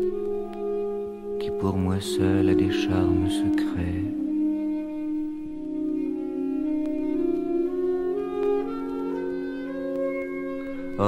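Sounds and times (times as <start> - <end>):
sustained held notes: 1.4 - 7.8.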